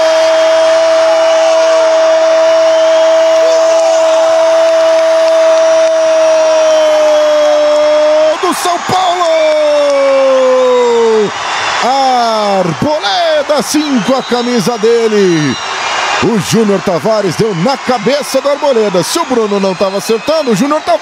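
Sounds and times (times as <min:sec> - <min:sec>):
crowd noise: 0:00.0 - 0:21.0.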